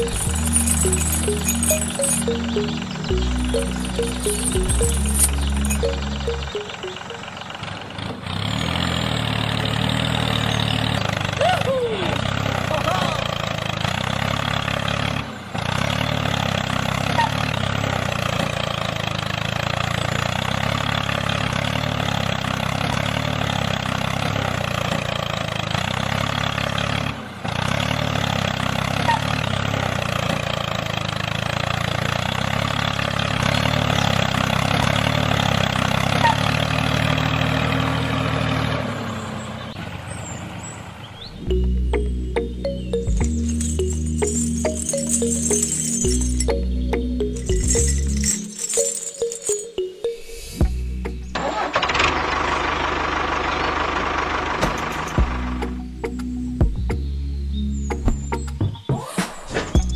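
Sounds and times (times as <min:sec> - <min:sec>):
tractor diesel engine idling: 0:00.0 - 0:27.6, 0:29.6 - 0:43.0, 0:51.3 - 0:55.9.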